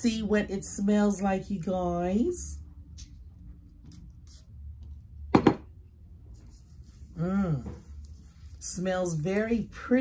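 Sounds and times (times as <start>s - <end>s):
wrists rubbing together: 6.3s - 9.8s.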